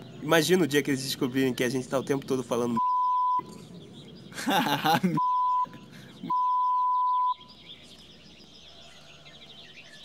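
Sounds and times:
censor bleep tone: 2.8 - 3.5, 5.2 - 5.7, 6.3 - 7.4.

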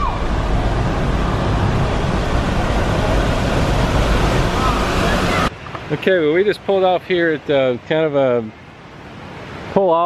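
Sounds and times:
car road and wind noise: 0.0 - 9.9.

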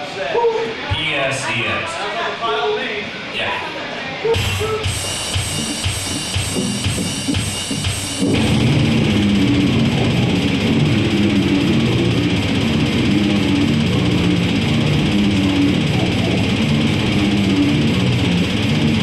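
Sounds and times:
heavy metal guitar riff: 4.4 - 19.0.

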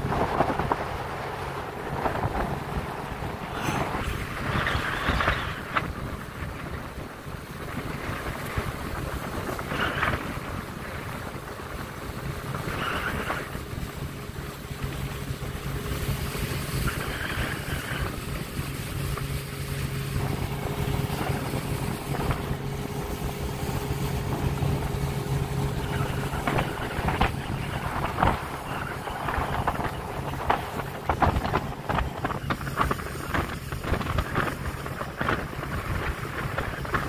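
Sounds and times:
outboard motor running: 0.0 - 37.0
water rushing past hull: 0.0 - 37.0
wind on microphone: 0.0 - 37.0.

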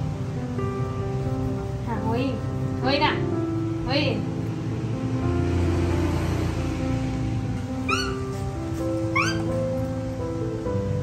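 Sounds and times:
background music: 0.0 - 11.0
baby monkey squeaking: 7.8 - 9.6.

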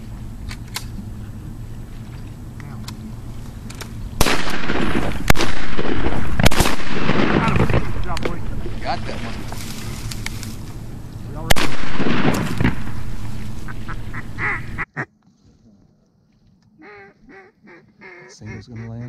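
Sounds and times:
steady rush of noise: 0.0 - 14.9
shotgun blast: 4.2 - 9.3, 11.4 - 13.9
ducks quacking: 13.5 - 15.1, 16.8 - 19.0.

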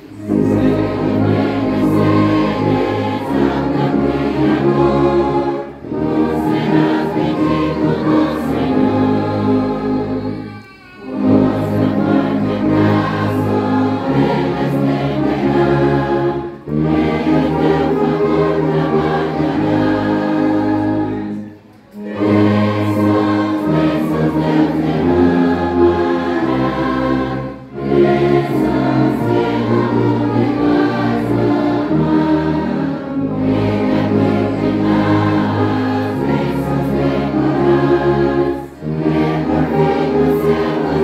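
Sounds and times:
congregation singing a hymn: 0.0 - 41.0
saxophones and brass chords: 0.0 - 41.0.

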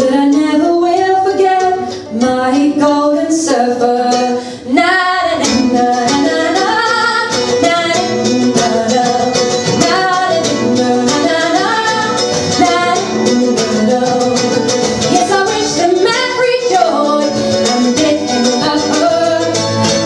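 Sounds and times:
plucked acoustic guitar: 0.0 - 20.0
woman singing: 0.0 - 20.0.

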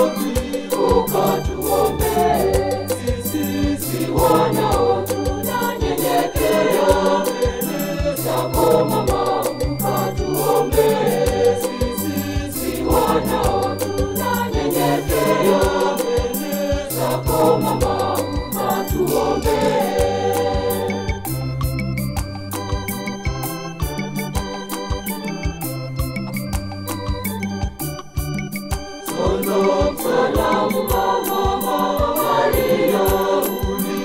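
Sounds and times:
steady beat: 0.0 - 20.9, 28.1 - 34.0
choir singing a hymn: 0.0 - 21.2, 29.1 - 34.0.

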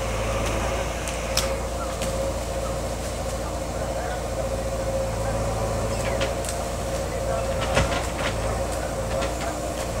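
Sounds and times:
engine whine: 0.0 - 10.0
excavator diesel engine running: 0.0 - 10.0
digging knocks and clanks: 7.4 - 10.0.

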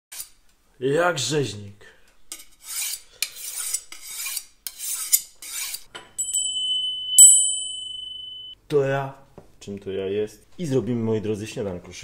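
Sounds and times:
knife scraping on sharpening steel: 0.1 - 0.4, 2.3 - 5.9
hand bell ringing: 6.2 - 8.6.

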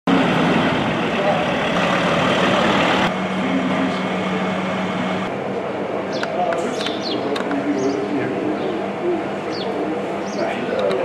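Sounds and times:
outdoor noise: 0.1 - 11.0
vehicle engine humming: 0.1 - 11.0.

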